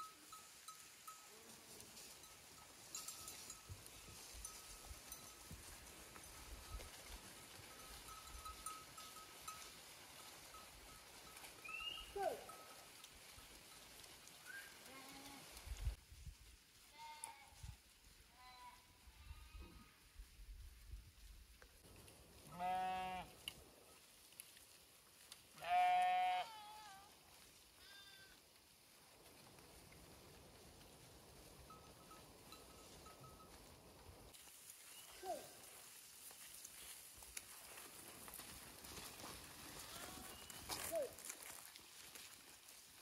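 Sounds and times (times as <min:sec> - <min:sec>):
sheep bleating: 0:22.5 - 0:23.3, 0:25.6 - 0:27.1.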